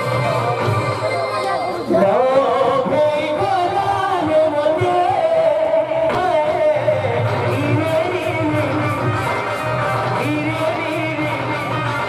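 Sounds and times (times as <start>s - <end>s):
band playing through a pa: 0.0s - 12.0s
instrumental backing: 0.0s - 12.0s
man singing into a microphone: 1.8s - 12.0s.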